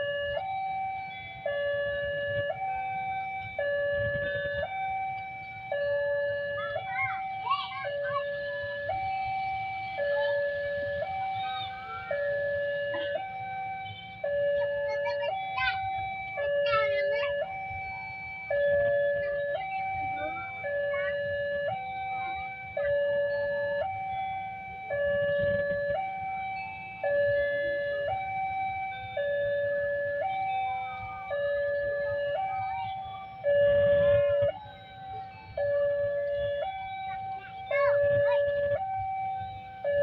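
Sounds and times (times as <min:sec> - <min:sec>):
two-tone level crossing alarm: 0:00.0 - 0:40.0.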